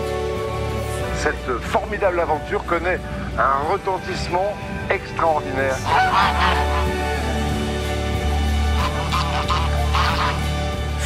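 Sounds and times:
background music: 0.0 - 11.0
geese honking: 5.2 - 11.0.

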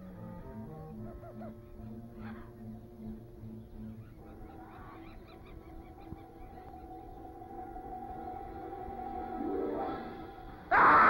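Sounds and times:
animal honking calls: 0.0 - 2.8.

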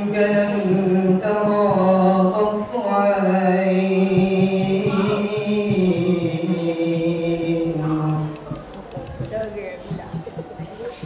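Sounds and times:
man singing unaccompanied: 0.0 - 8.8.

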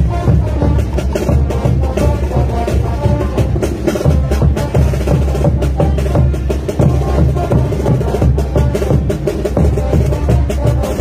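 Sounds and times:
bass drum beat: 0.0 - 11.0
parade band music: 0.0 - 11.0.

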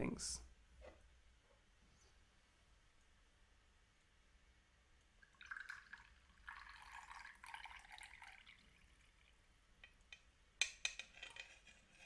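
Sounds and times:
liquid being poured: 5.2 - 10.2.

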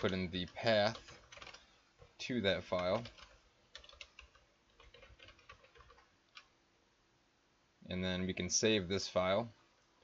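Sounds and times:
soft keyboard typing: 0.0 - 6.6.

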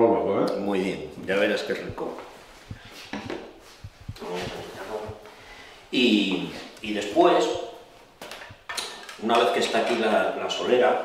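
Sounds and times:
cloth rubbing: 2.0 - 5.4.

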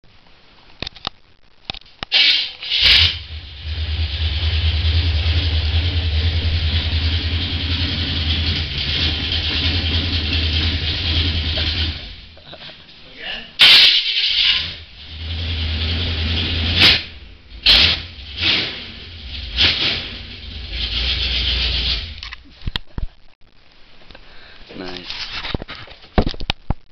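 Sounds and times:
truck engine starting: 2.2 - 12.4, 13.6 - 22.4
truck engine low rumble: 2.6 - 12.6, 14.2 - 22.4
loud short bumps: 13.6 - 22.2.

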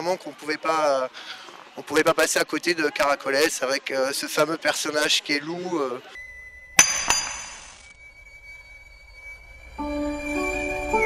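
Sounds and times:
bright ringing clink: 6.8 - 8.1.

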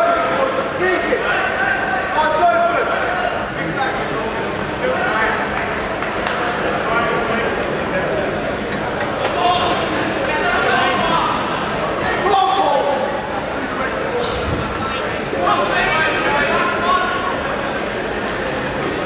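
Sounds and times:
people talking in echoing hall: 0.0 - 19.0.

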